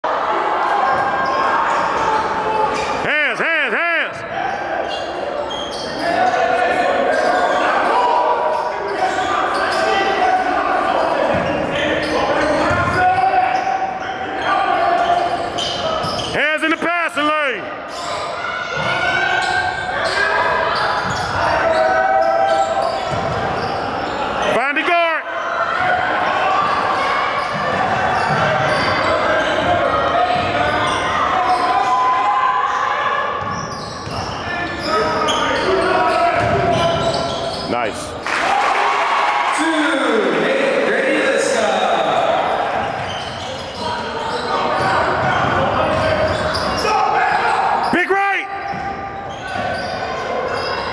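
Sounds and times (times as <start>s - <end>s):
echoing voices in a gym: 0.0s - 50.9s.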